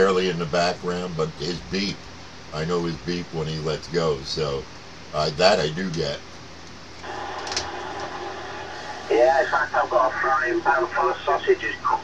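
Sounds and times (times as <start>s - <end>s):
radio static hiss: 0.0s - 6.2s, 7.0s - 12.0s
radio crackle: 7.0s - 12.0s.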